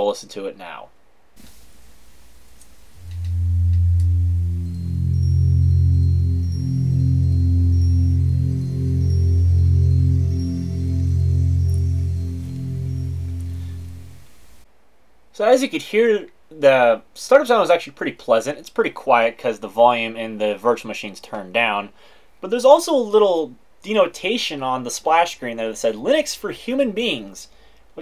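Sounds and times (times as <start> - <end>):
faint high chiming tones: 3.0 - 14.5
held low synth notes: 3.0 - 14.6.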